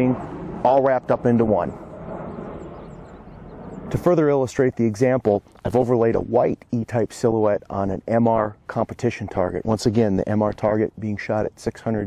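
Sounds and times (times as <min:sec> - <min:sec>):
low outdoor rumble with hiss: 0:00.0 - 0:12.0.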